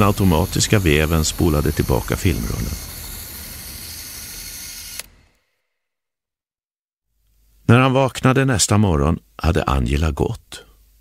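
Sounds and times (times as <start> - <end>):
film camera motor whirring: 0.0 - 5.6
camera click: 2.7 - 5.1.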